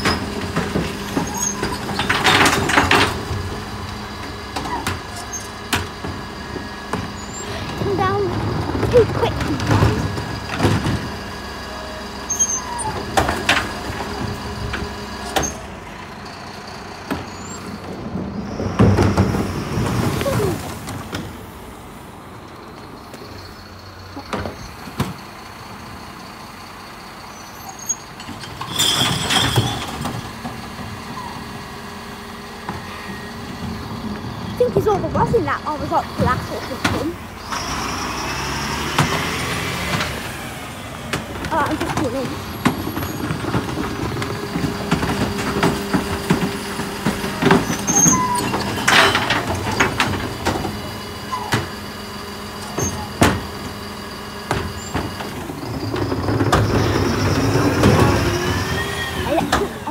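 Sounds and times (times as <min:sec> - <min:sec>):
bins clunking and knocking: 0:00.0 - 0:15.8, 0:17.0 - 0:21.5, 0:28.2 - 0:31.5, 0:32.6 - 0:37.7, 0:41.0 - 0:59.9
bin lorry engine hum: 0:00.0 - 0:59.9.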